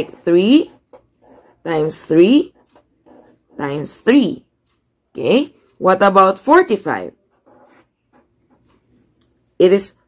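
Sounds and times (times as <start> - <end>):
marker strokes on paper: 0.0 - 4.1.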